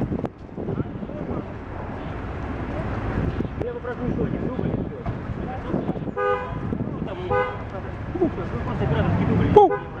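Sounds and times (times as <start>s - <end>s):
car horn toots: 6.1s - 6.6s, 7.3s - 7.6s, 9.6s - 10.0s
man calling out: 9.5s - 10.0s.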